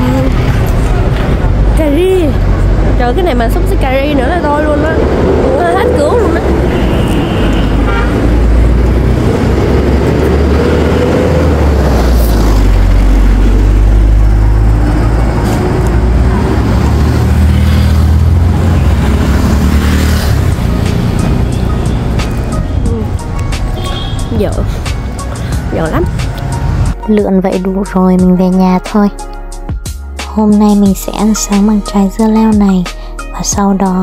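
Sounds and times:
road traffic rumble: 0:00.0 - 0:34.0
background music: 0:08.3 - 0:34.0.

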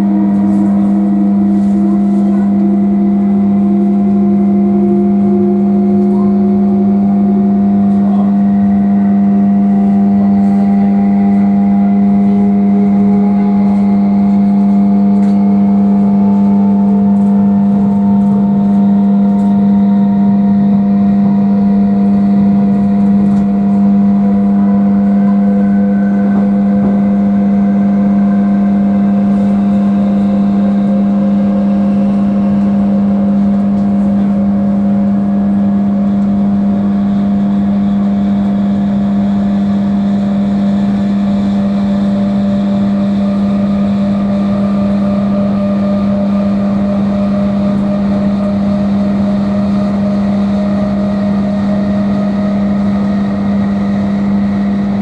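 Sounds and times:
train low hum: 0:00.0 - 0:55.0
train motor whine rising: 0:00.0 - 0:55.0.

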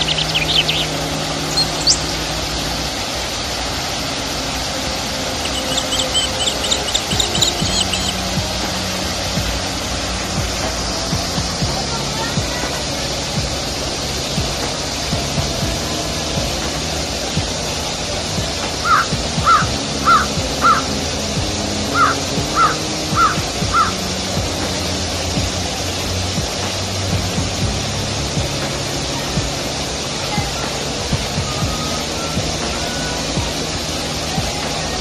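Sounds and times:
bird calls: 0:00.0 - 0:02.2, 0:05.4 - 0:08.3, 0:18.8 - 0:20.9, 0:21.9 - 0:24.0
soft background music: 0:00.0 - 0:35.0
waterfall rushing: 0:00.0 - 0:35.0.

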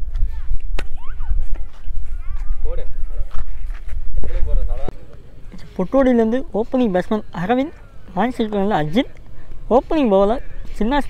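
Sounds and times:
wind rumble on microphone: 0:00.0 - 0:04.9
men talking: 0:02.2 - 0:11.0.

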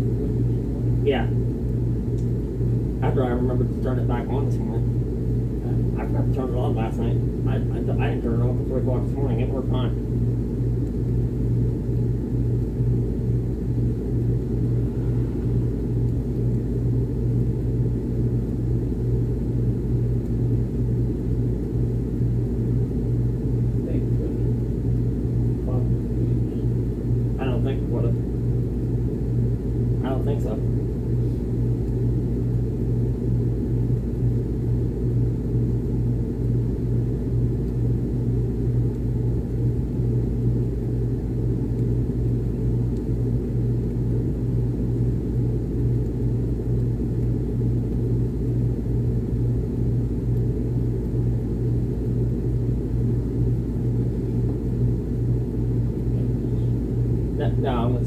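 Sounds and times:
air conditioner humming: 0:00.0 - 0:58.0
rumbling rush of air: 0:00.0 - 0:58.0.

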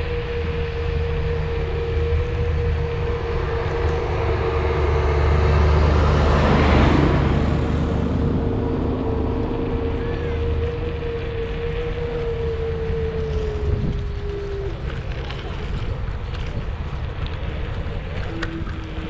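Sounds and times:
road noise: 0:00.0 - 0:19.0
steady whine: 0:00.0 - 0:19.0
wind rush: 0:00.0 - 0:19.0.

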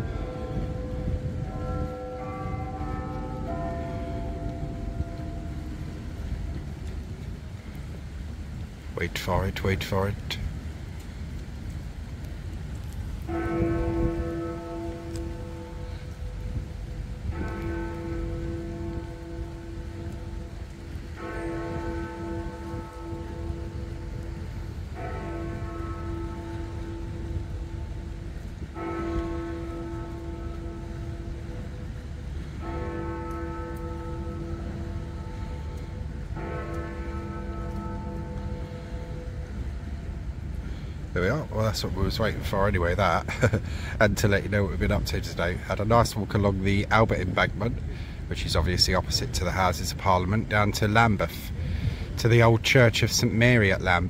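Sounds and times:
wind and city rumble: 0:00.0 - 0:54.0.

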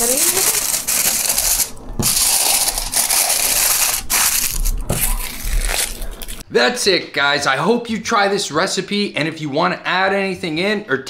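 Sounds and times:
aluminium foil crinkling: 0:00.0 - 0:06.4.

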